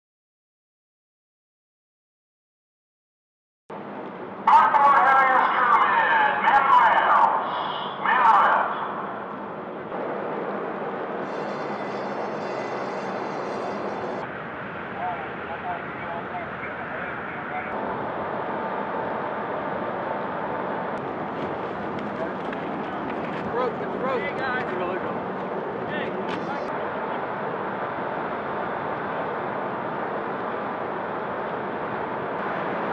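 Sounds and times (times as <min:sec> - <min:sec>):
steady rushing noise: 0:03.7 - 0:32.9
loud wavering shouted voices: 0:04.4 - 0:09.2.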